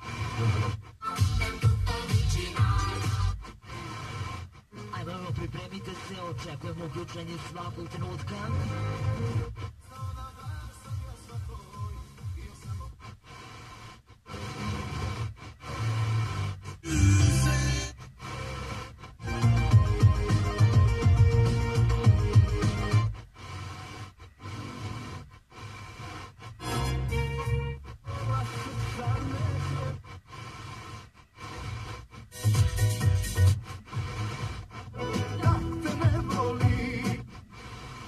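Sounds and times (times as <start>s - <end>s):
radio music snatches: 0.0s - 38.0s.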